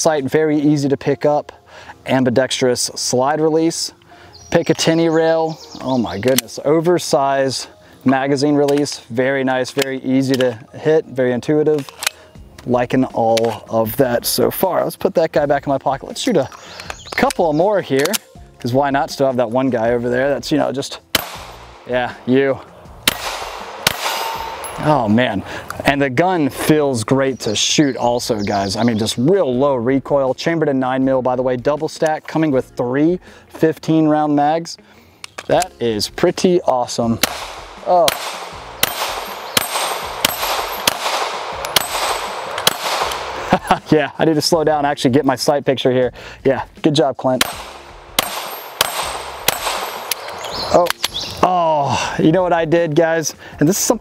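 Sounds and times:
pistol shots with echo: 21.1 - 21.9, 23.0 - 25.2, 37.2 - 43.5, 47.4 - 51.2
steel target ringing: 23.1 - 25.2, 38.1 - 43.0, 47.4 - 50.3.

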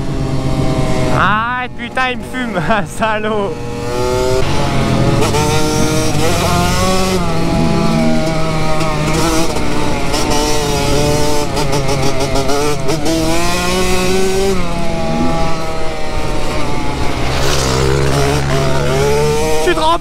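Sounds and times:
two-stroke dirt bike engine revving: 0.0 - 20.0.

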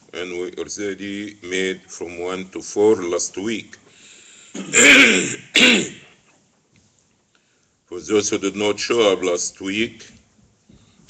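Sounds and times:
man coughing: 4.5 - 6.1.

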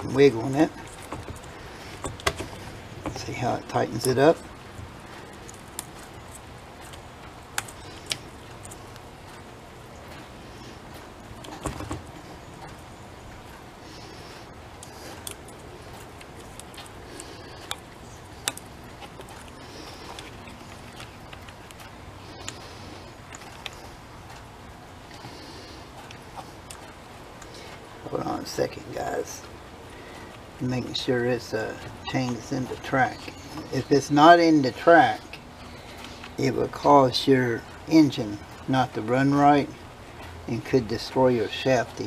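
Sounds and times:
faint background hum: 0.0 - 42.0.

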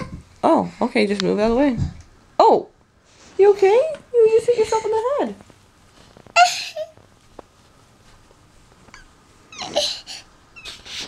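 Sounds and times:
toddler whimpering and crying: 6.4 - 7.0, 9.0 - 11.0.

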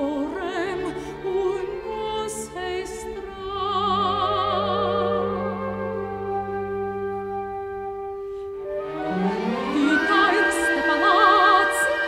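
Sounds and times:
orchestral accompaniment: 0.0 - 12.0.

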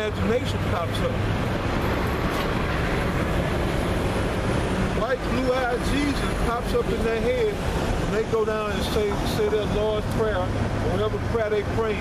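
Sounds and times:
vehicle rumbling past: 0.0 - 11.9.

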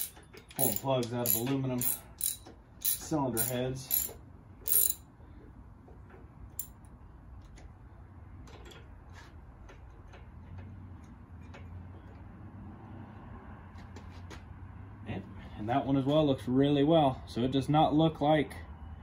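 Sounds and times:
ratchet wrench clicking: 0.0 - 5.0.

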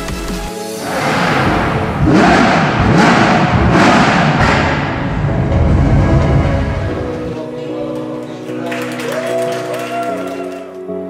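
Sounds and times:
loud music: 0.0 - 11.0
race car engine revving: 0.7 - 7.4.

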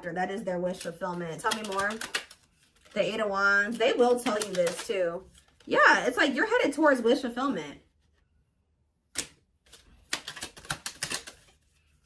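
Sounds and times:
cards shuffled by hand: 0.7 - 3.1, 3.7 - 5.7, 9.2 - 12.0.

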